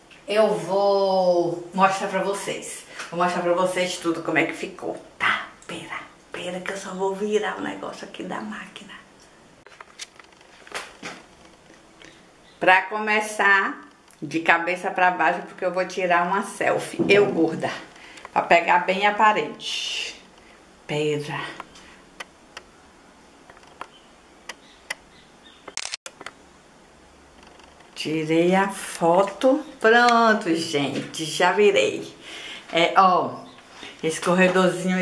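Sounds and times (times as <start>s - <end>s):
camera click: 25.7s - 26.4s.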